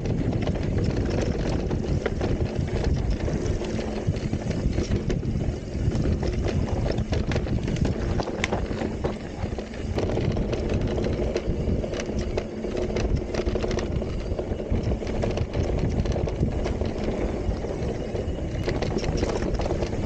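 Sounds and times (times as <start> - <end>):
bike clicking and rattling: 0.0 - 20.0
bike tyres on dirt: 0.0 - 20.0
wind on microphone: 0.0 - 20.0.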